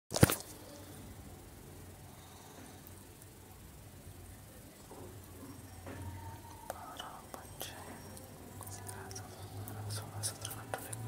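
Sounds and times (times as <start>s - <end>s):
faint low hum: 0.1s - 11.0s.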